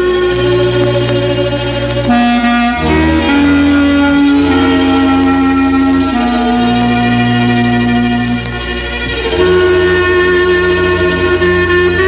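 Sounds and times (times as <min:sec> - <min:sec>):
bass accompaniment: 0:00.0 - 0:12.0
clarinet melody: 0:00.0 - 0:12.0.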